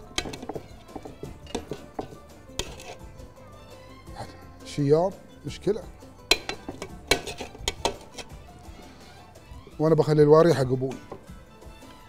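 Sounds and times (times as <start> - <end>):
metal spoon scraping a pot: 0.0 - 3.4, 6.2 - 9.8, 10.9 - 11.3.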